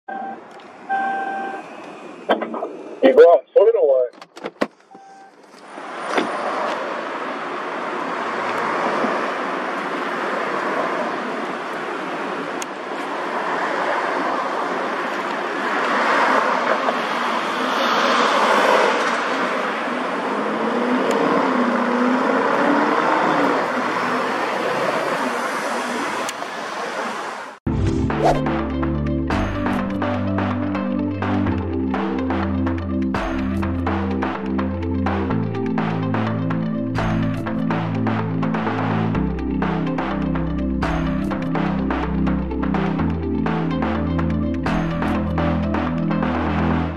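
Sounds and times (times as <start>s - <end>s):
street traffic noise: 0.1s - 46.9s
electronic music with a beat: 27.7s - 46.9s.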